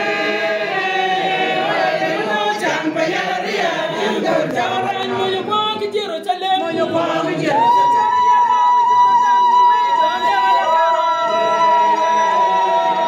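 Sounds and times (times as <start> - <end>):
congregation singing: 0.0 - 13.0.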